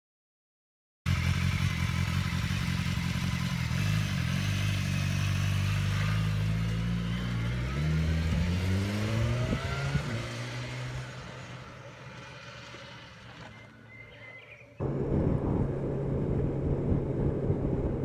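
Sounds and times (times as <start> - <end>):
motorcycle engine idling and revving: 1.1 - 18.0.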